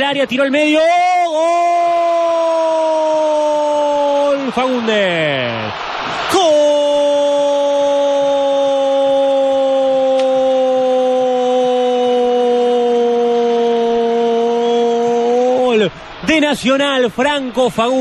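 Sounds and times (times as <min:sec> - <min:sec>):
man shouting long goal cry: 0:00.0 - 0:18.0.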